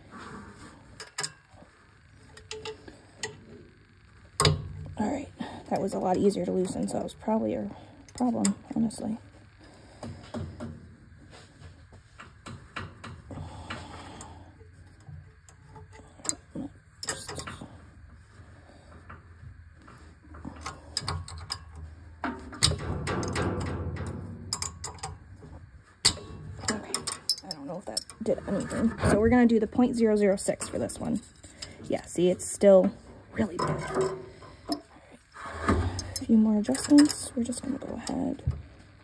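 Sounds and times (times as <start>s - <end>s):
faint low hum: 0.0s - 39.0s
metallic clicks of wrenches: 2.3s - 3.4s, 14.9s - 17.7s, 20.4s - 25.2s, 26.0s - 29.2s, 35.6s - 38.3s.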